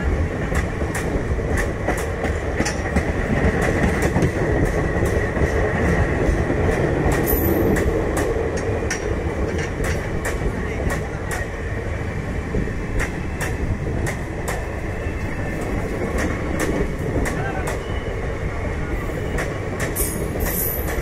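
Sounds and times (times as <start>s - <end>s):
wheels clacking over rail joints: 0.0s - 11.5s, 19.3s - 21.0s
train coaches rumbling past: 0.0s - 21.0s.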